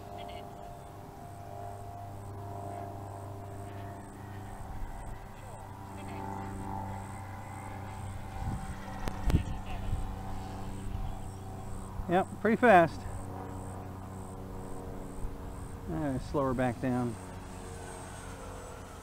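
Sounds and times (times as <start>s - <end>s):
model plane electric motor whine: 0.0s - 19.0s.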